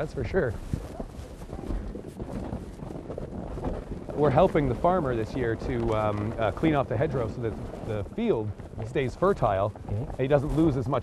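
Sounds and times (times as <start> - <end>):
footsteps through snow: 0.0 - 11.0
wind rumbling on microphone: 0.0 - 11.0.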